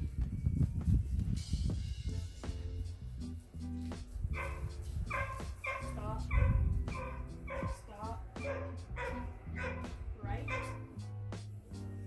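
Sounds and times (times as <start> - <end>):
dog barking: 4.3 - 10.9
low rumble: 4.3 - 11.0.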